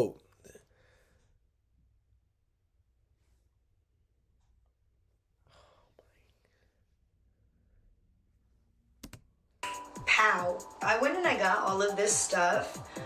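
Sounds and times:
faint breathy sound: 5.3s - 8.1s
sharp clicks: 9.0s - 9.3s
music: 9.6s - 13.0s
woman's voice: 10.0s - 13.0s.

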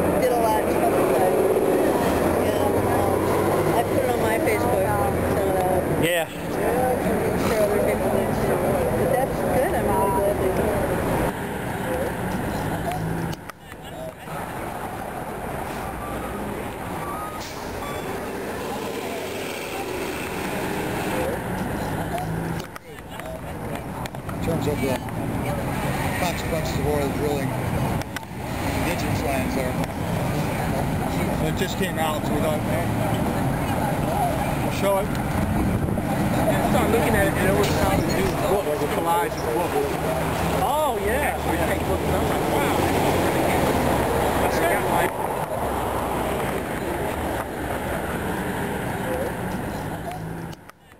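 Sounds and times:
bus engine running: 0.0s - 50.7s
faint voices: 0.0s - 50.9s
street traffic: 0.0s - 50.9s.

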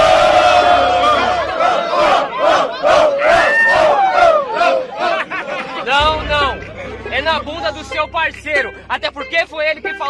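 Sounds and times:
crowd shouting and yelling: 0.0s - 8.8s.

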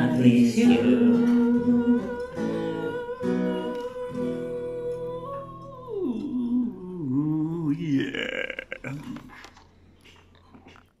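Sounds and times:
sung harmony: 0.0s - 7.8s
man's rough vocal sound: 7.2s - 9.6s.

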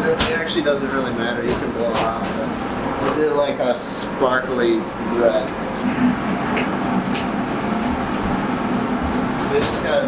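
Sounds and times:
ventilation fans humming: 0.0s - 10.0s.

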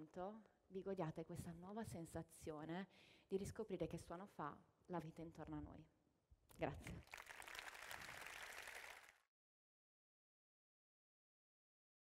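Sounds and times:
faint audience applause: 6.9s - 9.3s.

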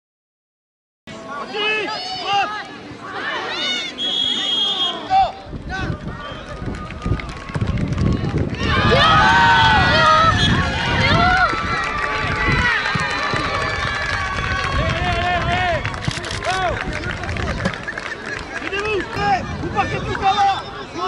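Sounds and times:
crowd cheering and shouting: 1.2s - 21.0s.

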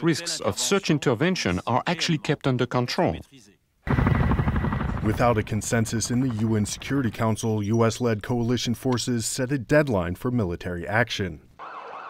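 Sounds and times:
helicopter rotor blades chopping: 3.9s - 7.6s.

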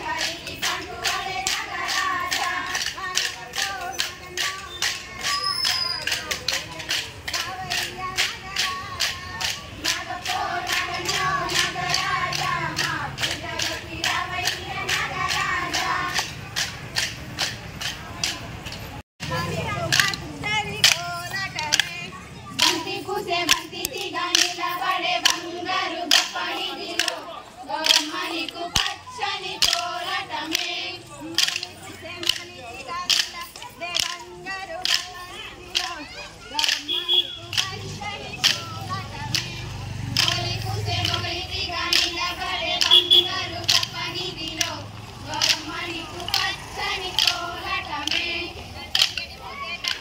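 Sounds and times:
women singing a folk song: 0.0s - 17.9s, 19.2s - 50.0s
wooden sticks clacking: 0.0s - 22.0s, 22.6s - 50.0s
sticks clacking together: 19.9s - 22.0s, 27.8s - 29.0s, 29.6s - 36.0s, 36.6s - 39.5s, 40.1s - 50.0s.

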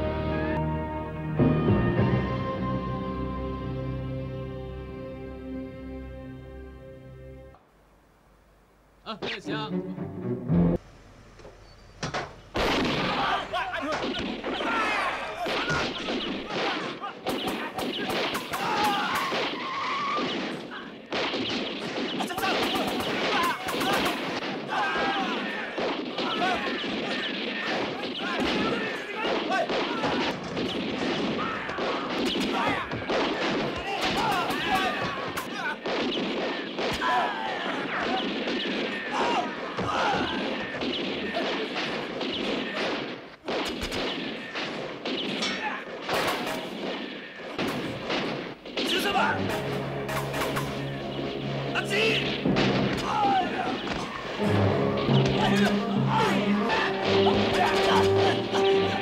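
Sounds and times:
gunshot: 12.0s - 50.9s, 52.2s - 54.4s.

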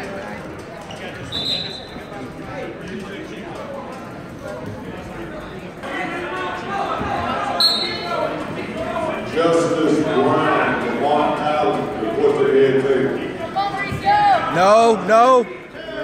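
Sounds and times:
crowd voices in a hall: 0.0s - 16.0s
referee's whistle blasts: 1.3s - 2.0s, 7.6s - 8.1s.

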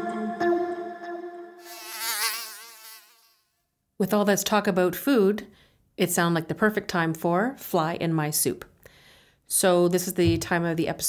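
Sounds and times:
buzzing fly sound effect: 1.1s - 3.6s.

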